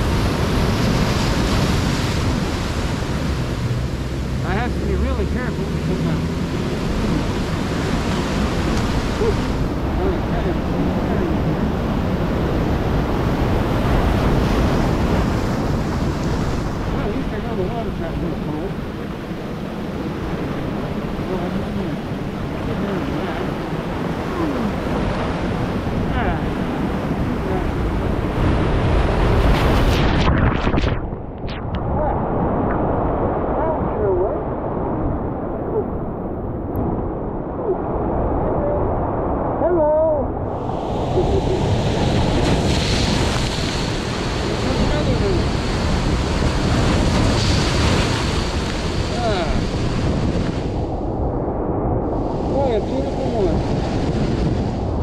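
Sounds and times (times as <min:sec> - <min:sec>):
surf breaking over rocks: 0:00.0 - 0:36.1, 0:36.8 - 0:55.0
wind buffeting microphone: 0:00.0 - 0:55.0.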